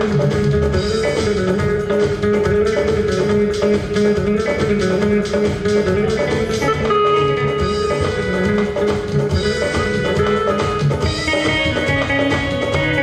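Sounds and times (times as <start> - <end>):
band playing instrumental: 0.0 - 13.0
electric guitar: 0.0 - 13.0.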